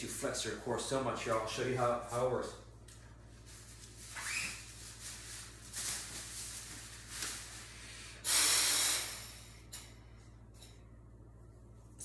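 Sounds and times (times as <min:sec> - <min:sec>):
forced breaths through breathing trainer: 0:07.8 - 0:09.5.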